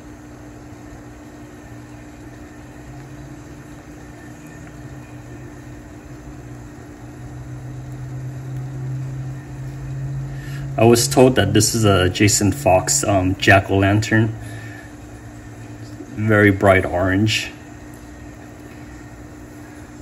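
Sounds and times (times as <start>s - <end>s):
low machine hum with hiss: 0.0s - 20.0s.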